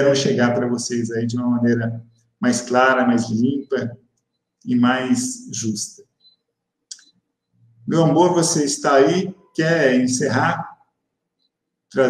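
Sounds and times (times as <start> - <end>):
person speaking: 0.0 - 4.0, 4.6 - 6.1, 7.8 - 10.8.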